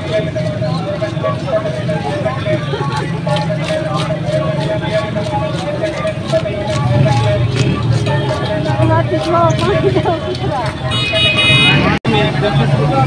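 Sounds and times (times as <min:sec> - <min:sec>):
people's voices: 0:00.0 - 0:13.0
rumble of vehicles: 0:00.0 - 0:13.0.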